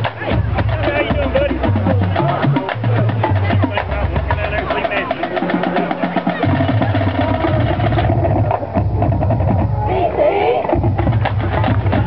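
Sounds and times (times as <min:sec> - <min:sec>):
drum strokes: 0:00.0 - 0:12.0
marching band playing: 0:00.0 - 0:12.0.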